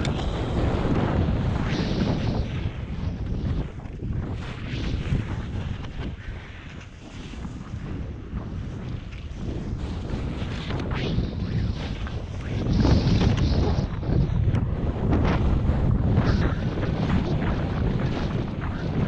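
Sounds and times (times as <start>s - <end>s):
wind buffeting microphone: 0.0s - 19.0s
skis scraping on snow: 0.1s - 19.0s.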